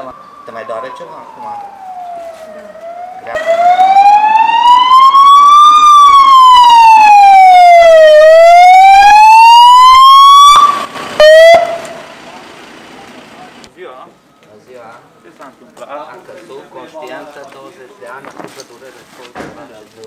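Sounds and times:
ambulance siren wailing: 0.0s - 12.1s.

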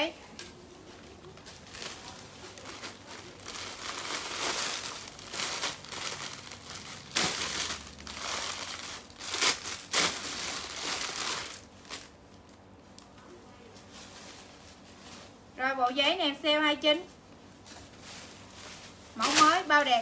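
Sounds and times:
plastic bags crinkling: 1.1s - 12.6s, 17.7s - 20.0s.

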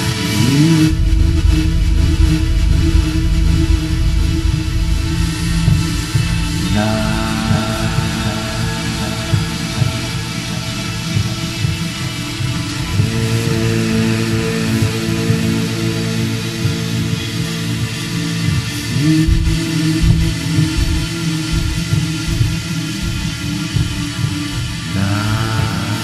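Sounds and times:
music with steady low pulse: 0.0s - 26.0s
sustained held notes: 0.0s - 26.0s
deep heavy bass: 0.3s - 26.0s.

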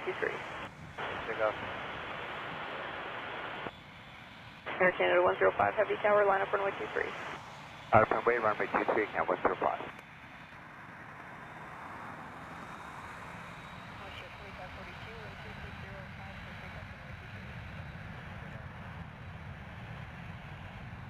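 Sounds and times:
jet engines roaring: 0.0s - 21.0s.

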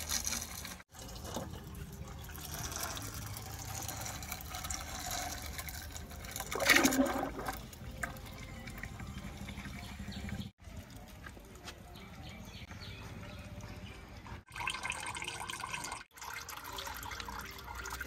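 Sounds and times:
oil pouring into bucket: 0.0s - 9.8s.

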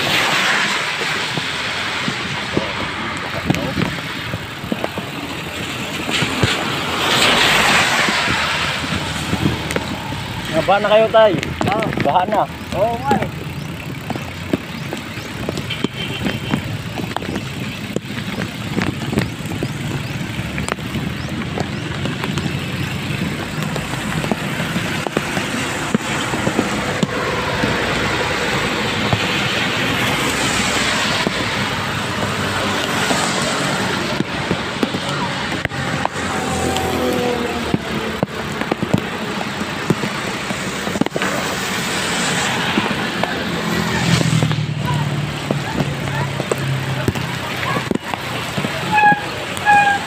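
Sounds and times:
rain and water noise: 0.0s - 50.0s
traffic: 0.0s - 50.0s.

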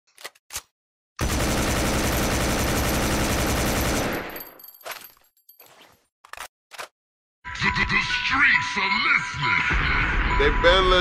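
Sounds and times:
automatic gunfire: 1.2s - 4.4s.

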